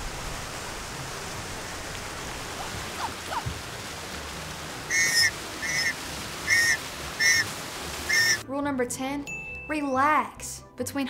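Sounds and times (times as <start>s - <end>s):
water fountain splashing: 0.0s - 8.4s.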